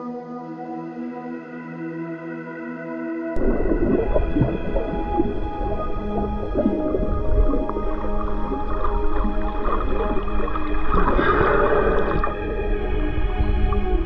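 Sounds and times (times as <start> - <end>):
background music: 0.0 - 14.0
underwater churning water: 3.4 - 14.0.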